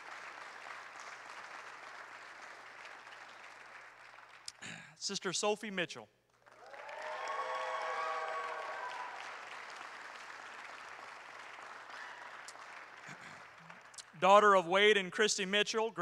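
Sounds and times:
congregation applauding: 0.0s - 4.9s, 6.3s - 15.0s.

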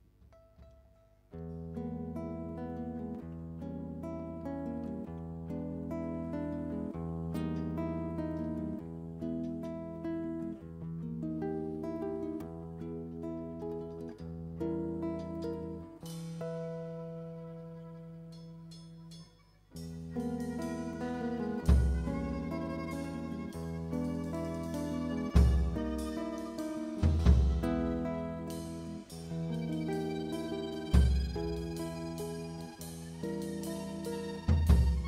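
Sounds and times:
plucked acoustic guitar: 0.0s - 35.0s.

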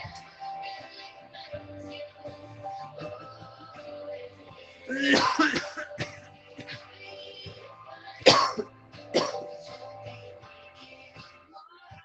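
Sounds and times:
background music: 0.0s - 12.0s
person coughing: 4.9s - 6.8s, 8.2s - 9.6s.

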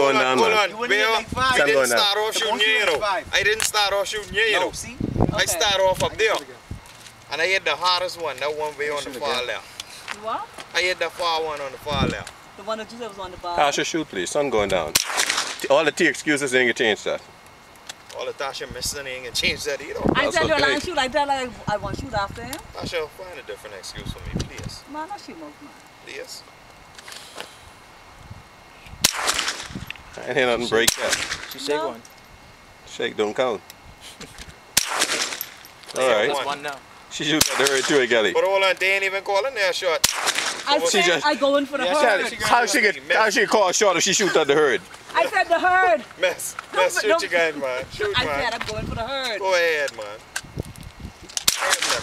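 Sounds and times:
rifle shot with echo: 14.9s - 15.6s, 29.0s - 29.8s, 30.9s - 31.6s, 34.8s - 35.5s, 37.4s - 38.0s, 40.0s - 40.7s, 51.4s - 52.0s.

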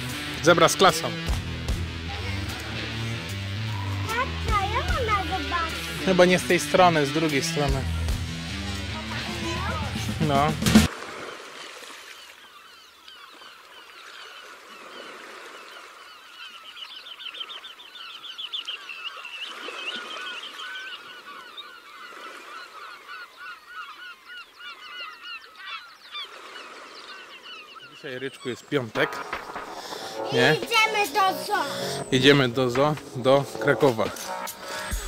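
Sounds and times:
flock of birds calling: 2.4s - 10.1s, 11.1s - 35.0s.

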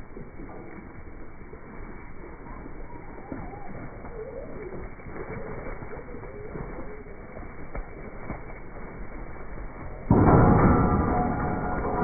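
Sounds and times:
hooves thudding on grass: 0.0s - 12.0s.

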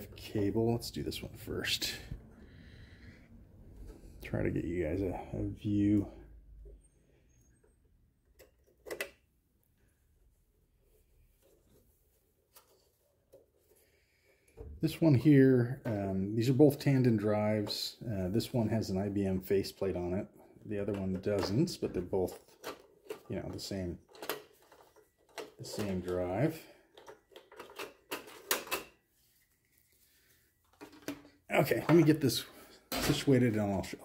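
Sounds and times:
cable clicks scrapes and rustles: 14.8s - 34.0s.

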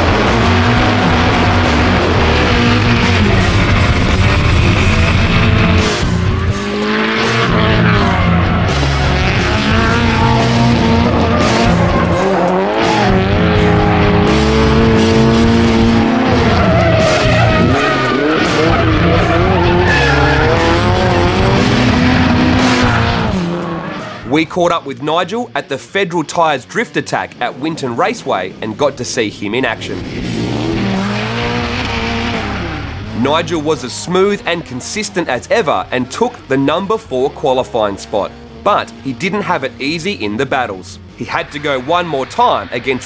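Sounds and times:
car engine revving: 0.0s - 24.5s, 25.8s - 43.0s
background music with bass line: 0.0s - 43.0s
tyre squeal: 16.3s - 21.0s.

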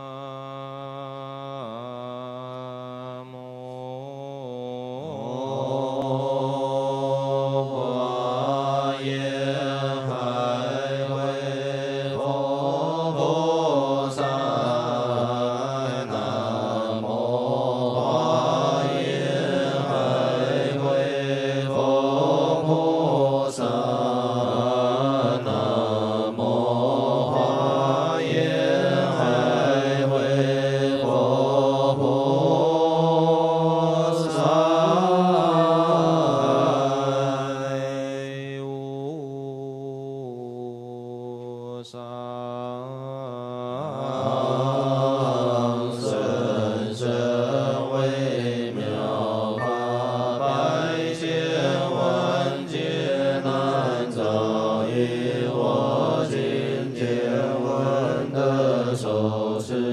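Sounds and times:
monks chanting: 0.0s - 59.9s.

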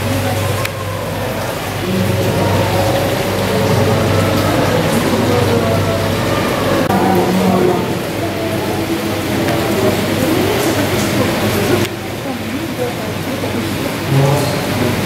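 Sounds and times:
hiss of artificial rain: 0.0s - 15.0s
indistinct crowd chatter: 0.0s - 15.0s.

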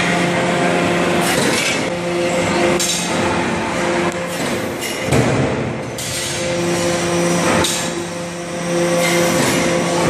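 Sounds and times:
hydraulic press humming: 0.0s - 10.0s.

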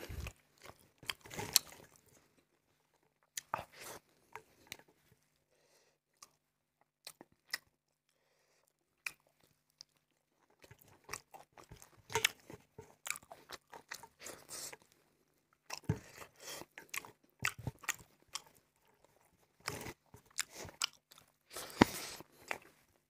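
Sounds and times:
person chewing food: 0.0s - 5.4s, 6.1s - 23.0s.

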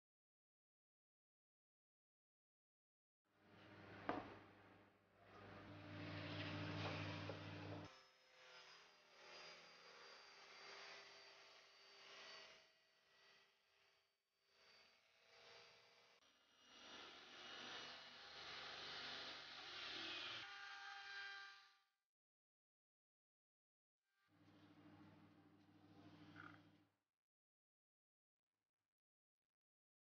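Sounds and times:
table saw cutting panel: 5.3s - 7.9s.

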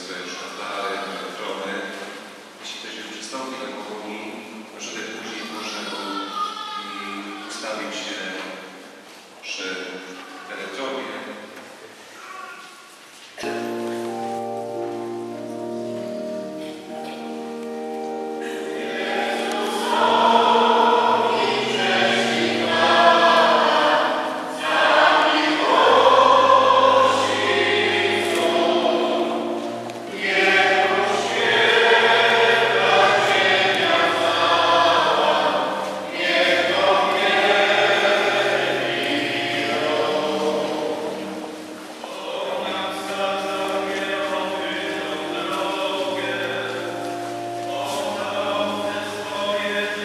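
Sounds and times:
church organ playing a hymn: 13.4s - 50.0s
choir singing: 15.4s - 50.0s.

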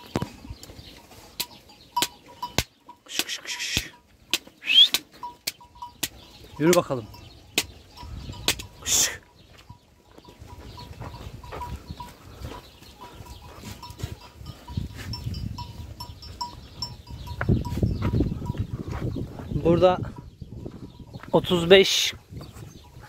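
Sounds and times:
sheep hooves shuffling: 3.8s - 23.0s.

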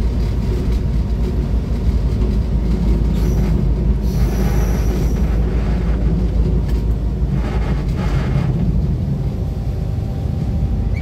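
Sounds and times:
diesel locomotive rumble: 0.0s - 11.0s.

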